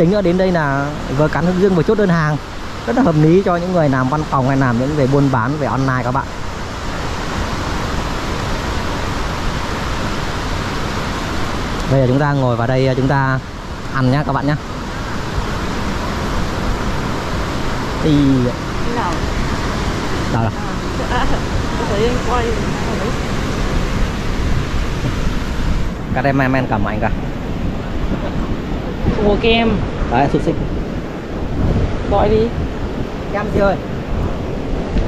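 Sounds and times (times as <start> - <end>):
surf breaking on beach: 0.0 - 35.0
wind on microphone: 0.0 - 35.0.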